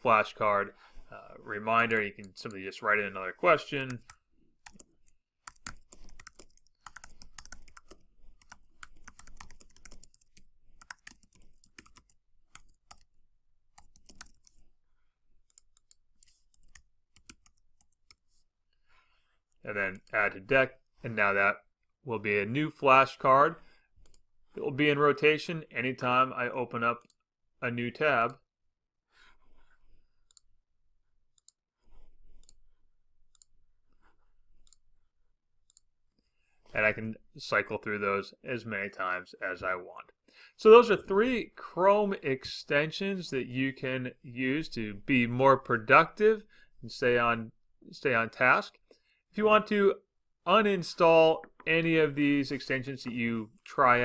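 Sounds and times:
computer keyboard typing: 3.9 - 14.7, 15.4 - 18.2.

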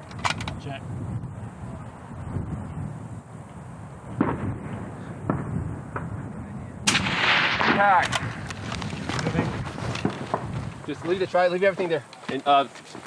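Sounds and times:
rifle shots: 6.8 - 8.5.

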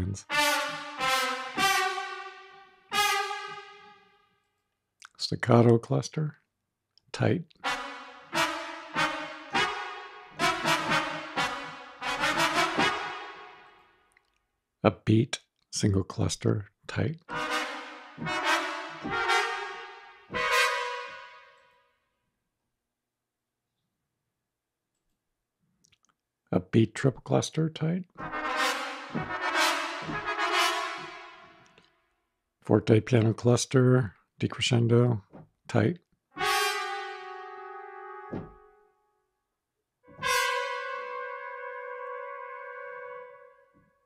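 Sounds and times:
trumpet ensemble chords: 0.0 - 4.4, 7.6 - 14.0, 17.2 - 21.8, 28.1 - 31.9, 36.4 - 39.0, 40.1 - 43.7.

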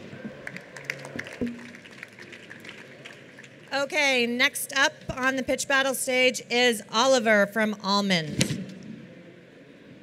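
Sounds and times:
large hall room noise: 0.0 - 10.0.

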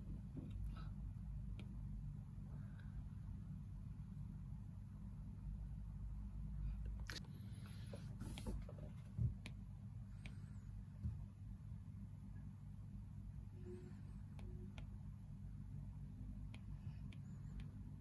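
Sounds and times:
steady low background hum: 0.0 - 18.0.

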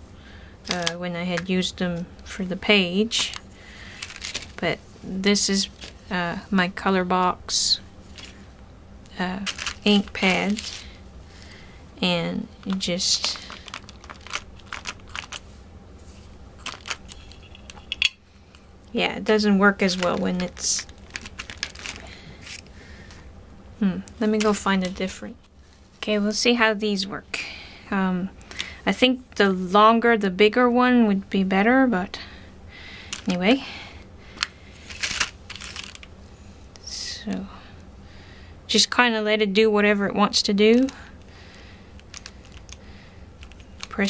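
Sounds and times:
paper rustling and small clicks: 0.7 - 1.0, 3.2 - 4.6, 9.4 - 10.9, 12.6 - 15.5, 16.6 - 17.8, 19.8 - 23.2, 34.4 - 36.1, 42.0 - 42.8, 43.4 - 44.0
plastic clicks and clatter: 0.7 - 1.5, 12.6 - 15.4, 16.6 - 18.1, 42.0 - 42.8, 43.4 - 44.0.

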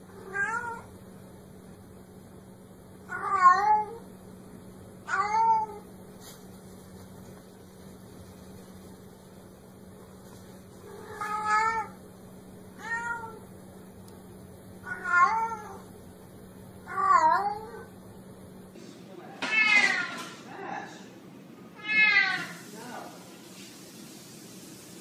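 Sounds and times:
cat meowing: 0.2 - 0.9, 3.1 - 4.0, 5.1 - 5.8, 10.9 - 12.0, 12.8 - 13.4, 14.8 - 15.9, 16.9 - 17.9, 19.4 - 20.3, 21.8 - 22.6.

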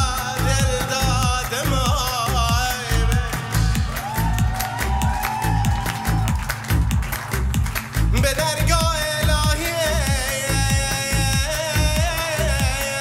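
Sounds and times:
pulsing electronic bass beat: 0.0 - 13.0.

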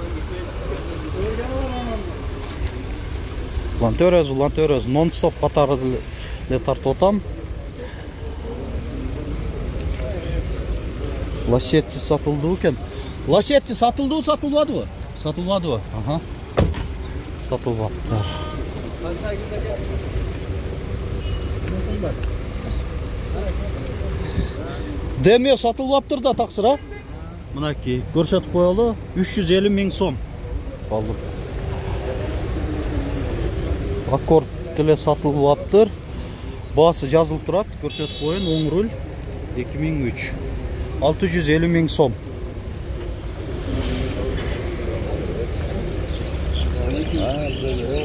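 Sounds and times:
car engines idling: 0.0 - 48.0
distant voices: 0.0 - 48.0.

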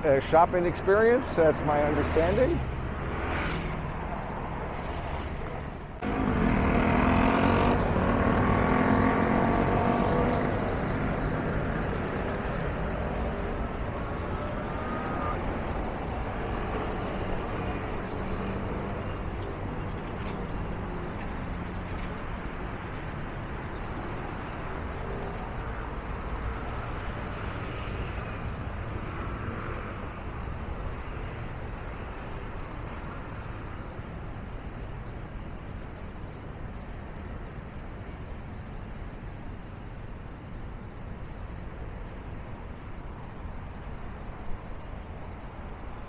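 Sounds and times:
cars and scooters passing: 0.0 - 36.9
steady traffic hum: 0.0 - 46.0
loud vehicle engine: 6.0 - 10.8.

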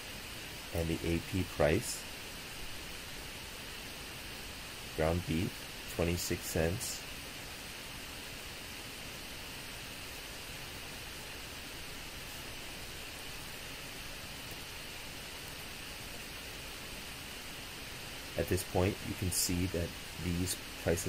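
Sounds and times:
steady background hiss: 0.0 - 21.0.

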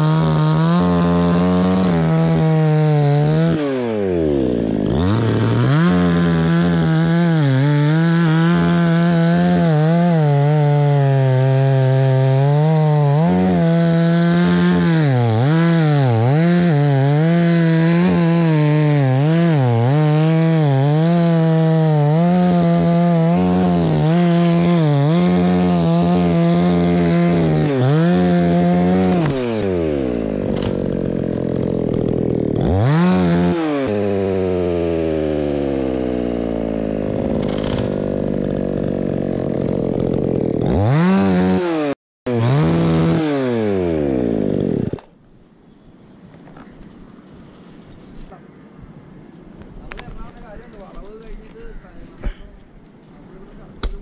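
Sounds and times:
chainsaw cutting wood: 0.0 - 45.2, 53.8 - 54.0.

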